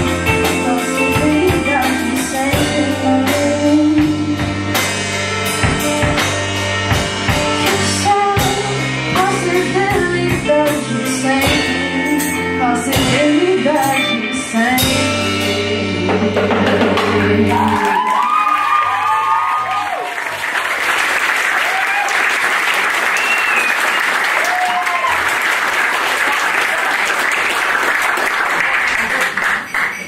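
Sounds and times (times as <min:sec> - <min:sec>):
person singing: 0:00.0 - 0:04.7, 0:07.6 - 0:18.4
live rock band playing: 0:00.0 - 0:19.1
audience applause and cheering: 0:17.0 - 0:30.0.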